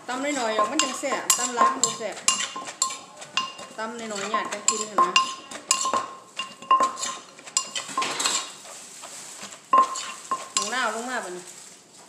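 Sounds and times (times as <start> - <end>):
metal spoon stirring: 0.0 - 11.2
wooden pestle knocking clay mortar: 0.5 - 8.2.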